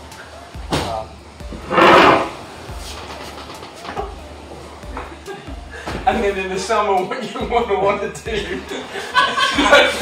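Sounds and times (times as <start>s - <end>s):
man laughing: 5.0s - 5.8s, 8.3s - 10.0s.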